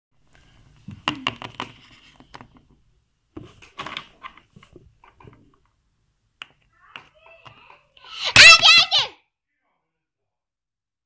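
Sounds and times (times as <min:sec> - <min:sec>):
child squealing: 0:06.8 - 0:09.2.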